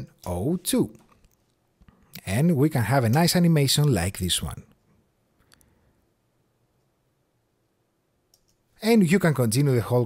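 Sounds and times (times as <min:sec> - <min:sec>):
man speaking: 0:00.0 - 0:01.1, 0:02.1 - 0:04.7, 0:08.8 - 0:10.0.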